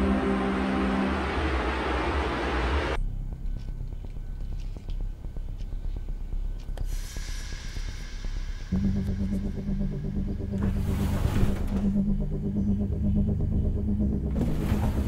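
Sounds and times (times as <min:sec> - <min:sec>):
low droning hum: 0:00.0 - 0:15.0
hissing noise: 0:06.8 - 0:11.9.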